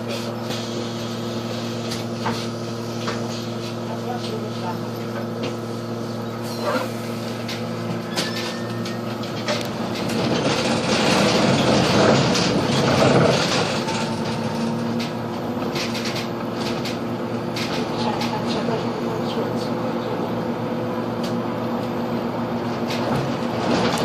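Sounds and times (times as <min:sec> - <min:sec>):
bus drivetrain hum: 0:00.0 - 0:24.0.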